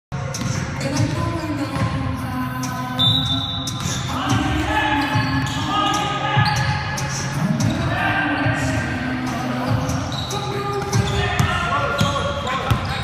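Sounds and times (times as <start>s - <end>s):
players' voices in a gym: 0.1s - 13.0s
basketball bouncing on hardwood floor: 10.9s - 13.0s.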